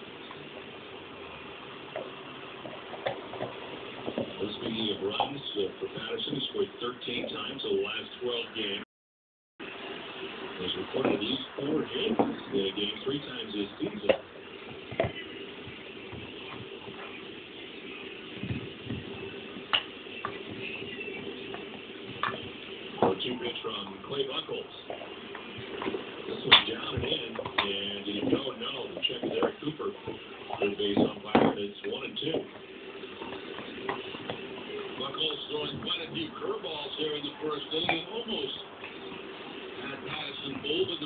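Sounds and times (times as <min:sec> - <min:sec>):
faint television: 0:00.0 - 0:08.9, 0:09.6 - 0:41.0
steady low hum: 0:00.0 - 0:08.9, 0:09.6 - 0:41.0.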